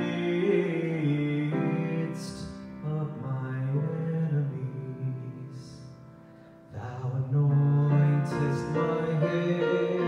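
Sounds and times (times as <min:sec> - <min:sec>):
grand piano: 0:00.0 - 0:10.0.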